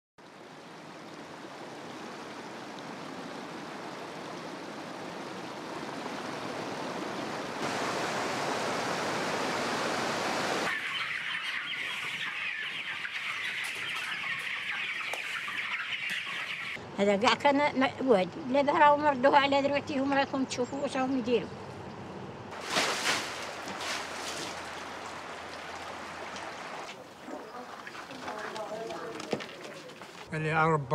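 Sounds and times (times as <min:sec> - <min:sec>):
rushing stream water: 0:00.2 - 0:10.7, 0:22.6 - 0:28.4
chickens cheeping: 0:10.6 - 0:16.8, 0:25.8 - 0:30.0.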